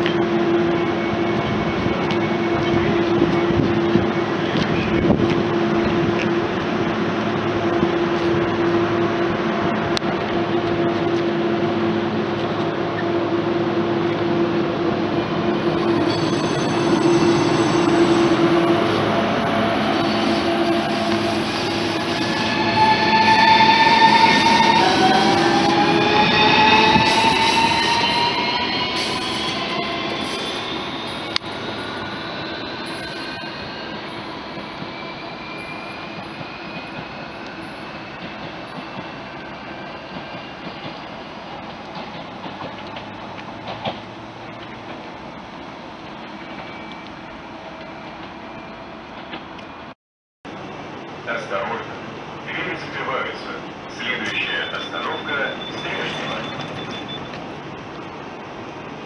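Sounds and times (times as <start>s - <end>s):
electric train traction whine: 0.0s - 49.8s, 50.6s - 59.0s.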